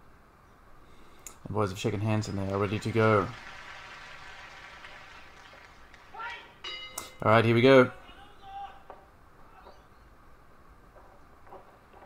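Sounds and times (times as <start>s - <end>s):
low hiss: 0.0s - 12.0s
distant voice calling out: 7.8s - 9.9s.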